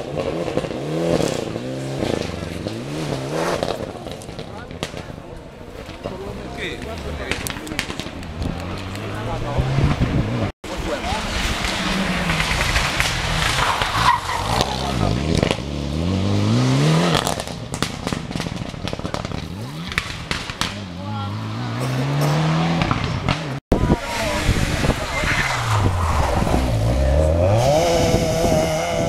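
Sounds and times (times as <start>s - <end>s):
rally car engines at full throttle: 0.0s - 29.0s.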